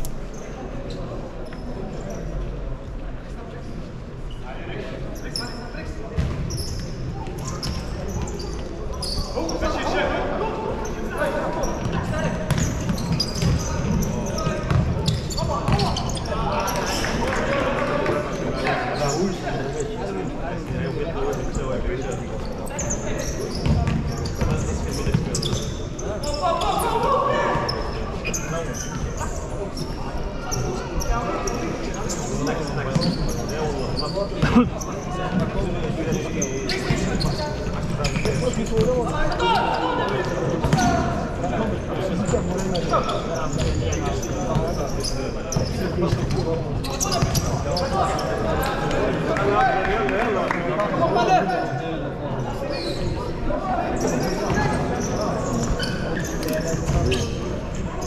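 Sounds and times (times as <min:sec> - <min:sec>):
spectators talking: 0:00.0 - 0:58.0
shoes squeaking on court: 0:00.2 - 0:02.5, 0:05.0 - 0:09.8, 0:10.7 - 0:17.4, 0:18.2 - 0:19.9, 0:20.6 - 0:27.0, 0:27.6 - 0:41.2, 0:42.0 - 0:49.2, 0:52.7 - 0:57.9.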